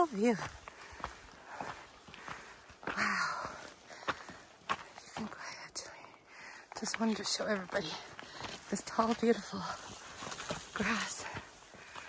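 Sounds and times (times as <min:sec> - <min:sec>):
footsteps on dirt trail: 0:00.0 - 0:12.0.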